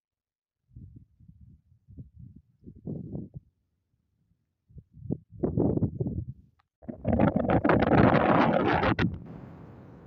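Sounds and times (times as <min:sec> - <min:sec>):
wind buffeting microphone: 0:00.7 - 0:03.6, 0:04.7 - 0:10.0.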